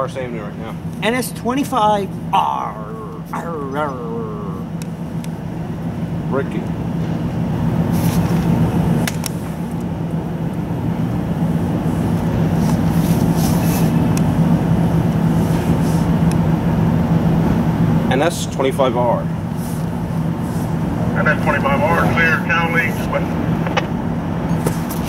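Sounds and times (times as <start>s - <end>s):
diesel locomotive engine drone: 0.0s - 25.0s.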